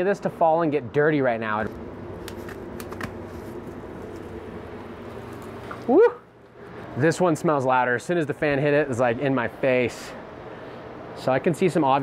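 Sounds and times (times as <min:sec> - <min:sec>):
low motor hum: 0:01.5 - 0:07.0
leaves rustling and crackling: 0:01.6 - 0:05.9
person saying woo: 0:05.9 - 0:06.3.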